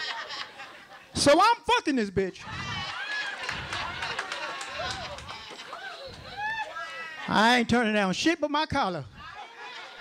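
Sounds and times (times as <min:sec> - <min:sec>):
audience laughing and calling out: 0:02.4 - 0:07.7, 0:09.1 - 0:10.0
hand clapping: 0:03.4 - 0:06.2.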